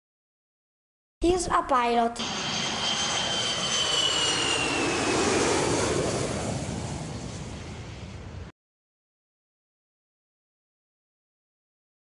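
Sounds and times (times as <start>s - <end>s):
airplane engine whine flying past: 2.2s - 8.5s.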